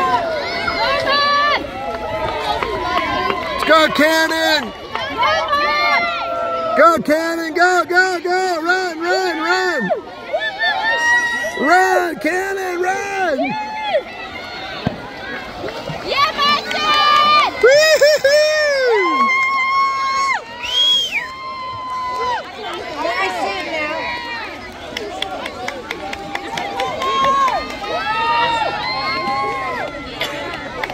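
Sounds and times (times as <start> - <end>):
children shouting and cheering: 0.0 - 6.8, 9.0 - 25.2, 25.9 - 30.9.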